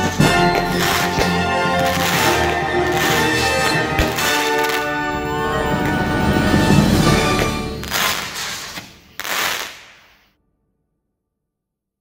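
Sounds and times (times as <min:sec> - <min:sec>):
firework bursting with sharp crack: 0:00.1 - 0:05.1, 0:07.1 - 0:10.4.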